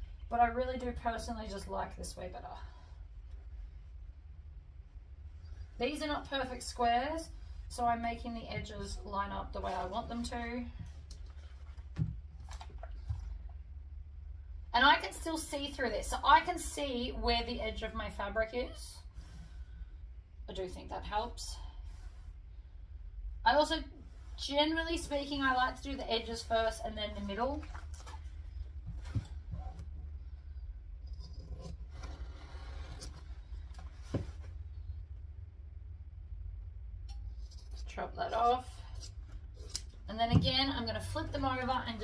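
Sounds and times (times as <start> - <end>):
low steady hum: 0.0 - 42.0
fabric rustling and scraping: 8.7 - 13.4, 31.3 - 34.8.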